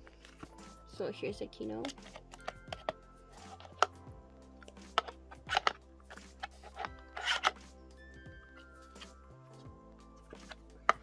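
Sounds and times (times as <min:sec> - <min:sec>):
soft background music: 0:00.0 - 0:11.0
hands rubbing plastic case: 0:04.8 - 0:07.7.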